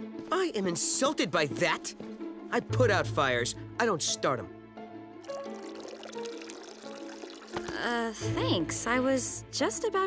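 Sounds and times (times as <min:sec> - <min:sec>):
background music: 0:00.0 - 0:10.0
coffee pouring into a mug: 0:05.2 - 0:07.8.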